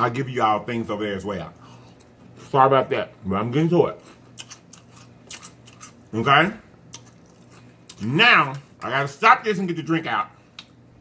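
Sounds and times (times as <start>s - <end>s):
faint chewing: 3.9s - 6.1s, 6.8s - 8.9s.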